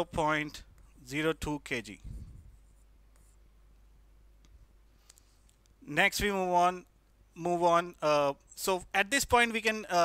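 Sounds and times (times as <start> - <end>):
stylus scratching on glass screen: 2.5 - 3.4.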